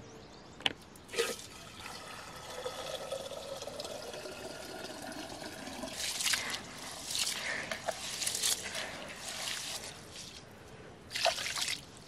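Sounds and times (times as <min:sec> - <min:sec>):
water running into plastic bucket: 0:01.1 - 0:09.9.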